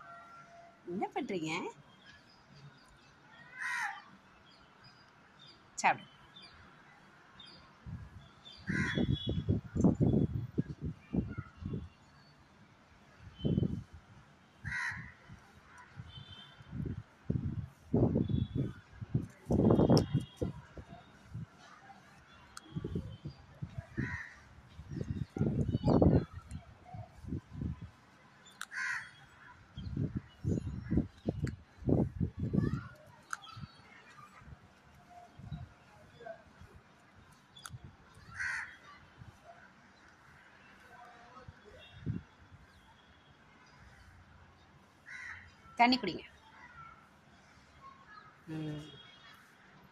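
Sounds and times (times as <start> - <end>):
crow cawing: 3.6 - 4.0, 8.7 - 9.0, 14.6 - 15.1, 28.7 - 29.2, 38.3 - 38.8, 45.1 - 45.4.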